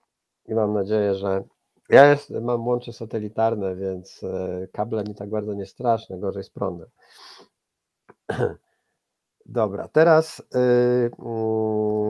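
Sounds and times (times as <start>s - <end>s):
man clearing his throat: 8.3s - 8.6s.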